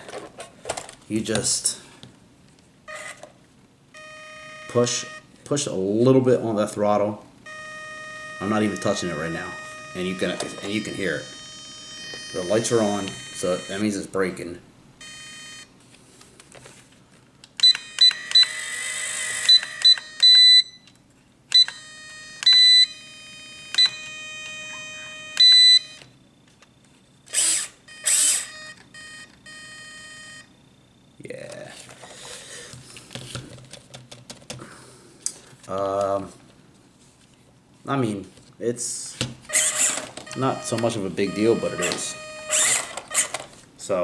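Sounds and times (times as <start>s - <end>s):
short high electronic beeps: 39.5s - 42.9s.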